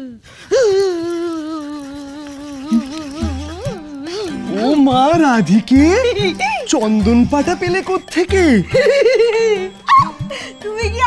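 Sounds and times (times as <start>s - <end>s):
background music: 1.6s - 11.0s
wordless voice with pitch glides: 2.1s - 8.7s.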